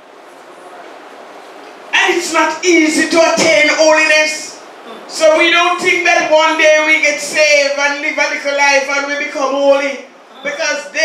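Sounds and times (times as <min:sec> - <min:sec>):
faint room noise: 0:00.0 - 0:11.0
woman speaking through microphone: 0:04.8 - 0:05.1, 0:10.3 - 0:10.6.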